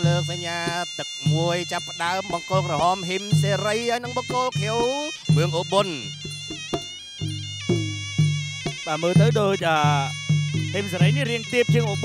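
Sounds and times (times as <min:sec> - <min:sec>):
low drum beat: 0:00.0 - 0:12.0
reedy pipe melody: 0:00.0 - 0:12.0.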